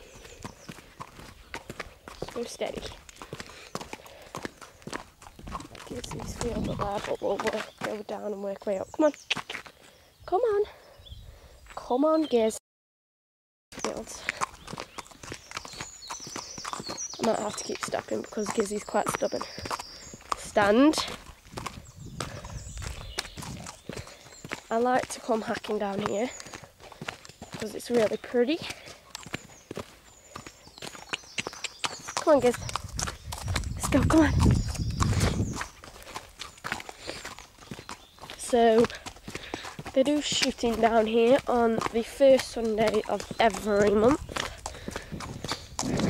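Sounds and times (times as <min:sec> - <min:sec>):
horse hooves clip-clopping: 0:00.0 - 0:09.8, 0:13.8 - 0:46.0
footsteps on dirt track: 0:00.0 - 0:10.0, 0:13.8 - 0:46.0.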